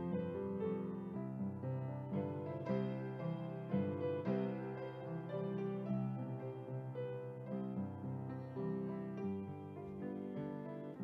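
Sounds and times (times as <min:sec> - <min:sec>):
gentle piano music: 0:00.0 - 0:11.0.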